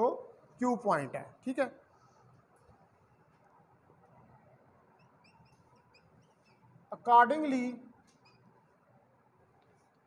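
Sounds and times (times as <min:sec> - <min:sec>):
marker squeaking on whiteboard: 0:02.2 - 0:06.9, 0:08.0 - 0:08.9.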